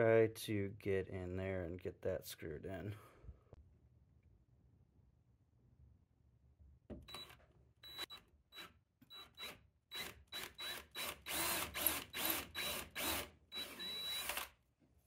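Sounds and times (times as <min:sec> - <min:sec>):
cordless drill motor whining: 0:07.1 - 0:14.6.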